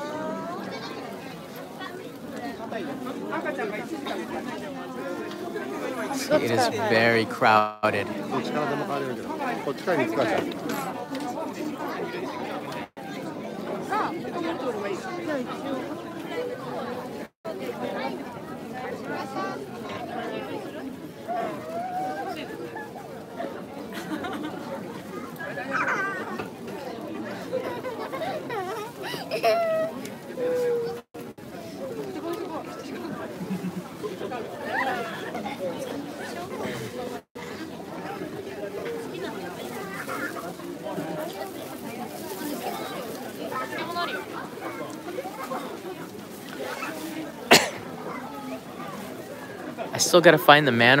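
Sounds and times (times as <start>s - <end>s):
crowd chatter: 0.0s - 51.0s.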